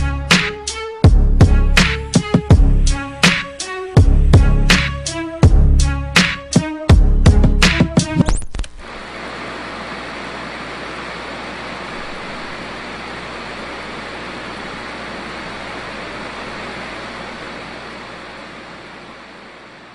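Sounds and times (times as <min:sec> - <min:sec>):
steady hiss: 0:08.7 - 0:19.9.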